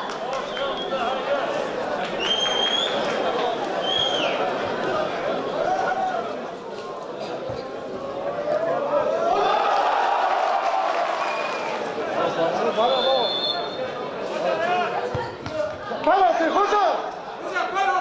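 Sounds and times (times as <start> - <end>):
referee's whistle blast: 12.8 - 13.8.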